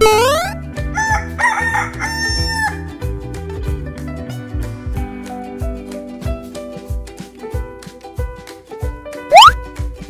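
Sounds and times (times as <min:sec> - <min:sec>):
rooster crowing: 0:01.0 - 0:02.8
music with steady beat: 0:02.4 - 0:10.0.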